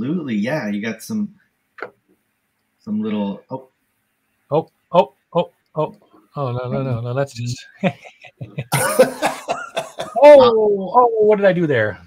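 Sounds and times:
man laughing hard: 7.8 - 10.3.

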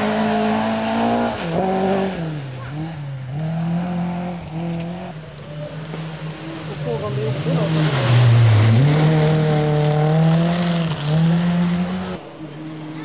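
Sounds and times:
rally car engine accelerating: 0.0 - 13.0.

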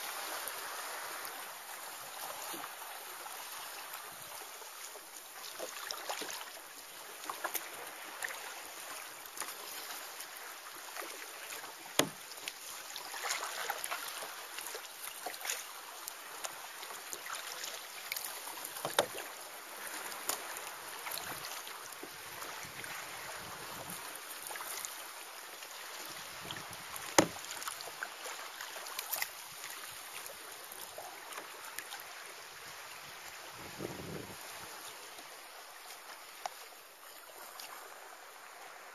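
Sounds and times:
water lapping around kayak: 0.0 - 38.9
water drips and splashes: 0.1 - 33.0.

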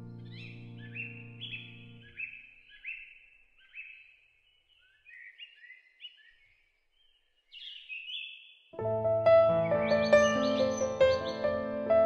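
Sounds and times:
music: 0.0 - 2.1, 8.8 - 12.0
songbirds chirping: 0.0 - 12.0.

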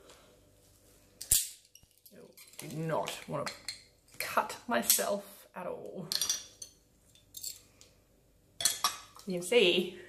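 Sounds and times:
glass pieces clinking: 6.1 - 7.6.

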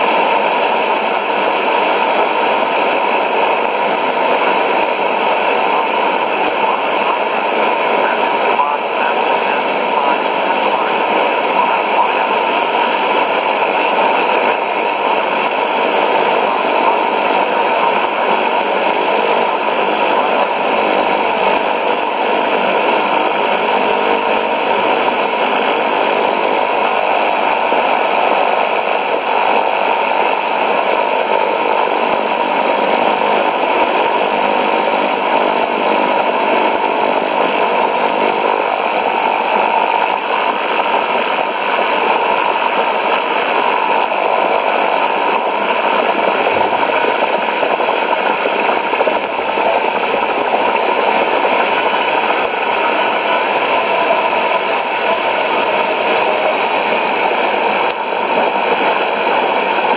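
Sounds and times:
shortwave radio static hiss: 0.0 - 59.9.

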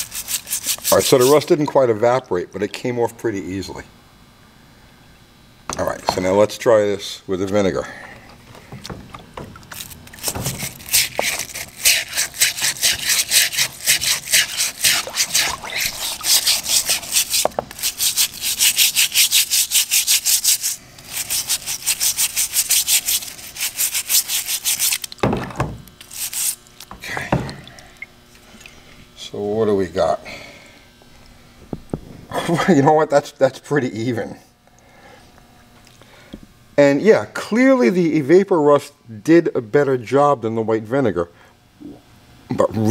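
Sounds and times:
brush scrubbing rusty metal: 0.0 - 1.5, 9.7 - 25.1, 26.0 - 26.6.

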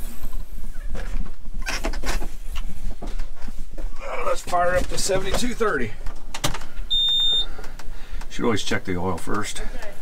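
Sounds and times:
electronic beep: 6.9 - 7.5.

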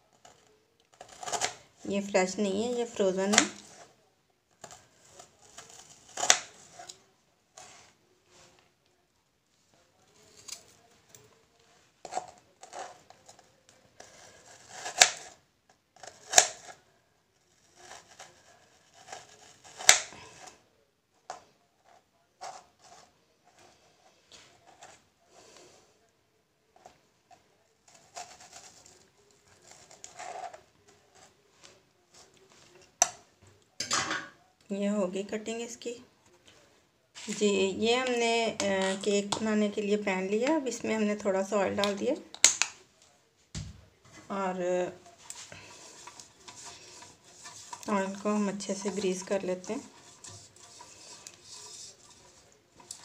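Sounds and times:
knife slicing frozen fruit: 0.2 - 2.1, 4.6 - 7.0, 10.1 - 10.9, 12.1 - 15.4, 16.0 - 16.8, 17.6 - 20.6, 45.3 - 53.0.

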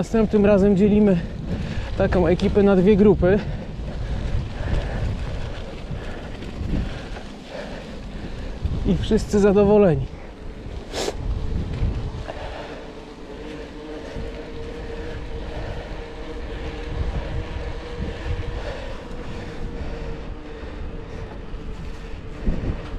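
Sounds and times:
bike tyres rolling on bricks: 0.0 - 22.9
wind buffeting microphone: 0.0 - 22.9
faint steady hum: 3.1 - 22.9.

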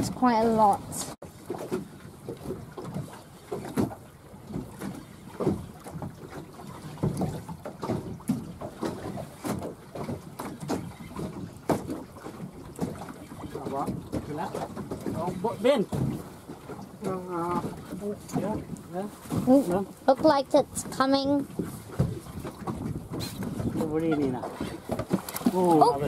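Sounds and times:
choppy water slapping boat hull: 0.0 - 26.0
wind buffeting microphone: 13.4 - 26.0.

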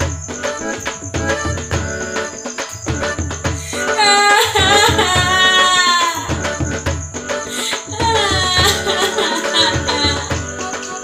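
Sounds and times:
instrumental accompaniment: 0.0 - 11.0
woman singing: 3.6 - 11.0.

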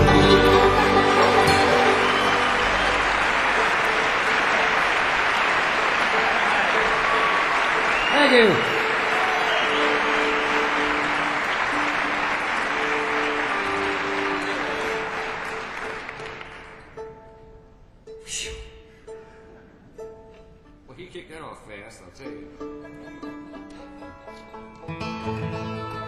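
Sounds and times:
audience applauding: 0.0 - 17.0.

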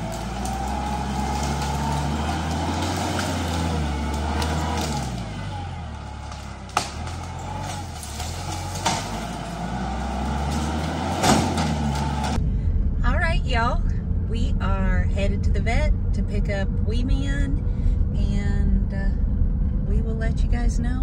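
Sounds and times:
sharp wood cracks: 0.0 - 12.4
tractor engine under load: 0.0 - 12.5.

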